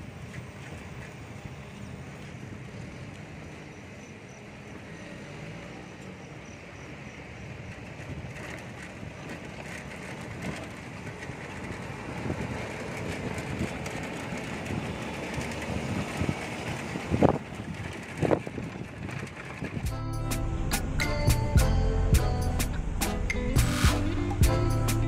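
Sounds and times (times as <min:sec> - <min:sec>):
wheels rumbling over brick paving: 0:00.0 - 0:25.0
wind on microphone: 0:07.6 - 0:19.9.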